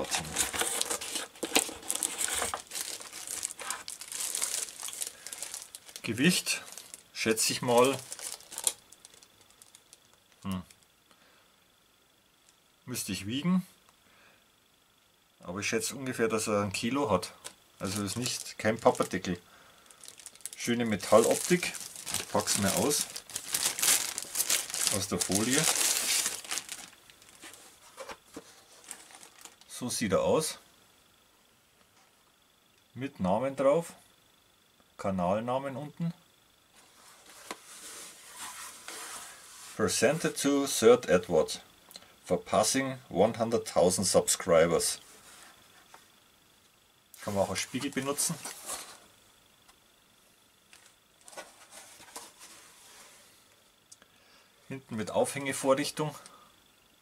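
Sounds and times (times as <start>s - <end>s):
plastic film crinkling: 0.0s - 10.9s, 17.8s - 29.7s
soft handling ticks and rustles: 19.9s - 29.7s, 47.2s - 49.0s, 50.7s - 53.6s.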